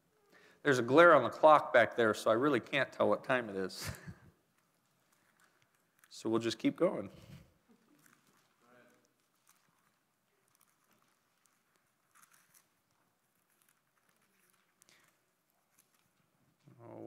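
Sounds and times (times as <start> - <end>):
thin pages rustling: 4.5 - 16.7.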